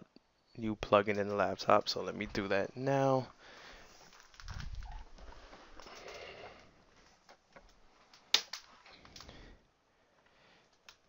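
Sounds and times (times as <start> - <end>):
handling noises: 3.3 - 9.3.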